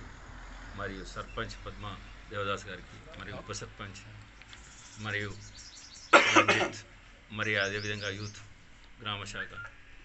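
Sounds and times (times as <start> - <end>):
man coughing: 6.2 - 6.8.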